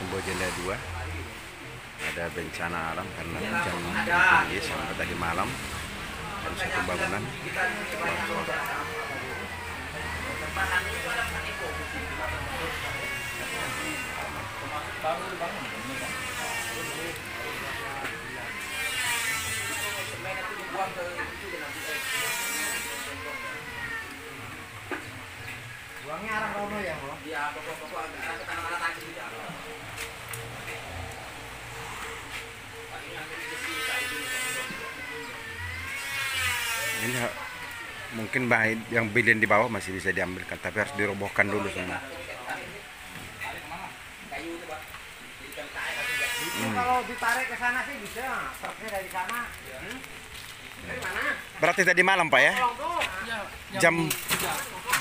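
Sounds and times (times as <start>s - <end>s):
people talking indistinctly: 0.0s - 55.0s.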